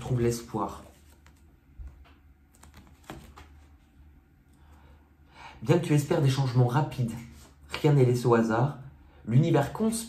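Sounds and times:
low room hum: 0.0 - 10.0
card clicks and taps: 1.1 - 3.7.

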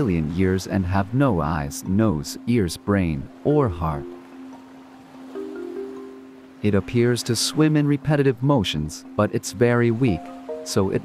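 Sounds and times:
soft music of low notes: 0.0 - 11.0.

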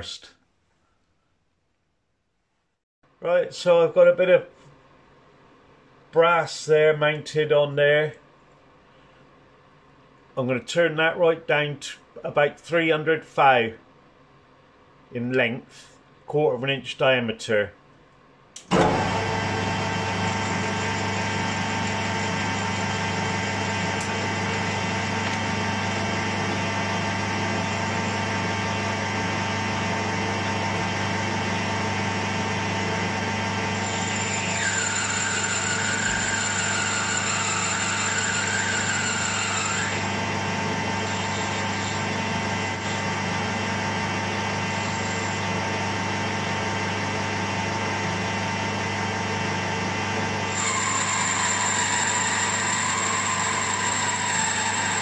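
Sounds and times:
wavering whine of tool cutting: 18.6 - 55.0
metal lathe motor hum: 18.7 - 55.0.

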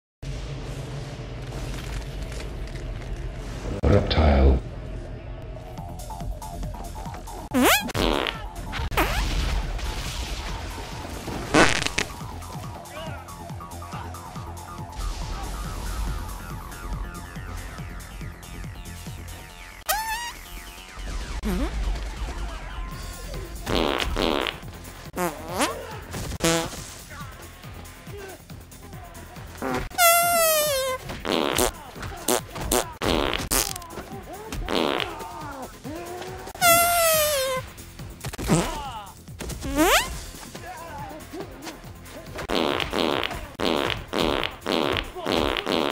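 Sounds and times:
low film score: 0.2 - 45.9
fart sound effect: 7.4 - 10.6, 11.4 - 12.2, 19.8 - 22.4, 23.6 - 25.8, 26.4 - 26.8, 29.6 - 33.8, 34.7 - 35.2, 36.6 - 37.6, 38.3 - 38.8, 39.6 - 40.2, 42.5 - 45.9.

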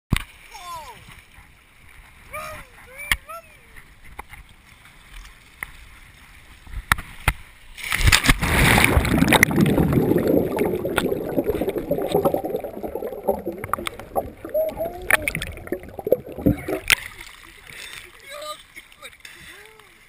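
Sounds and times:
faint water movement: 0.3 - 20.0
camera plunging underwater: 7.8 - 17.3
muffled underwater churning bubbling: 8.5 - 17.1.

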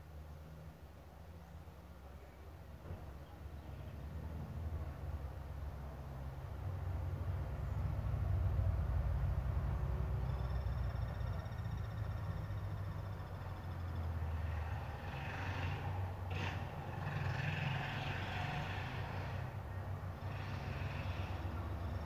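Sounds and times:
street traffic rumble: 0.0 - 22.0
motorcycle passing: 7.0 - 22.0
faint high whine: 10.2 - 14.1.

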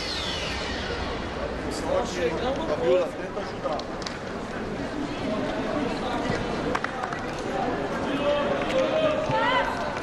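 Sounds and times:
whoosh falling in pitch: 0.0 - 3.2
arena crowd noise: 0.0 - 10.0.

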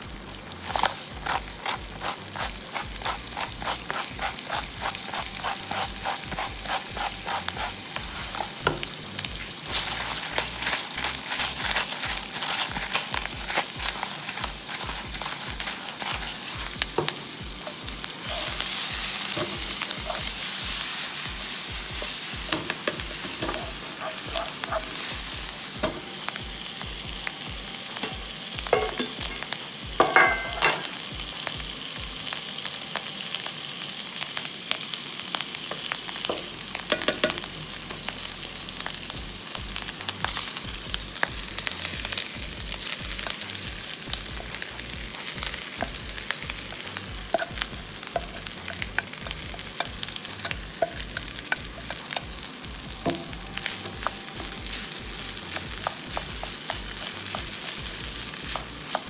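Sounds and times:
food sizzling in oil: 0.0 - 59.0
spatula scraping and knocking pan: 0.7 - 8.9, 9.7 - 26.0, 28.7 - 29.4, 30.0 - 30.9, 45.1 - 52.4.

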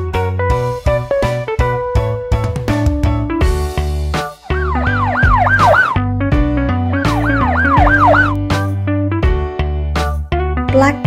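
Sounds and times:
background music: 0.0 - 11.0
police siren sweeps: 4.5 - 6.1, 7.0 - 8.4.

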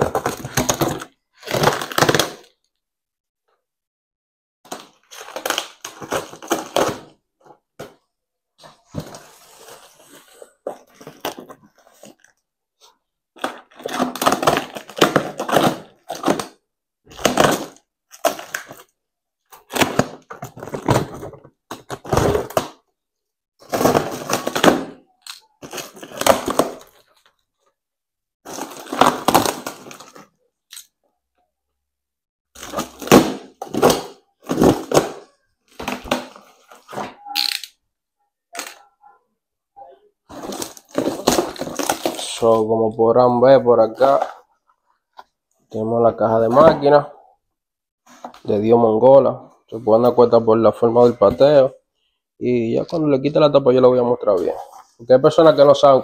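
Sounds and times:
plastic wrap crinkling and tearing: 28.5 - 30.3, 40.3 - 42.5.

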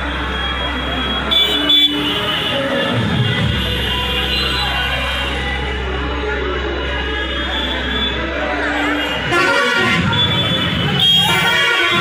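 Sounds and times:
street noise: 0.0 - 12.0
vehicle horn tooting: 0.8 - 5.3, 8.9 - 12.0.

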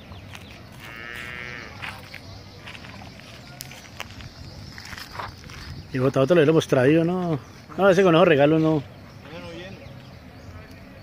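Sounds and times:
farm animal call: 0.8 - 2.0.

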